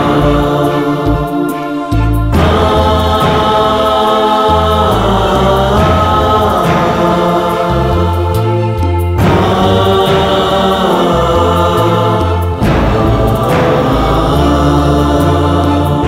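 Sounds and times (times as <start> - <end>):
keyboard orchestration with bass: 0.0 - 16.0
male choir singing a hymn: 0.0 - 16.0.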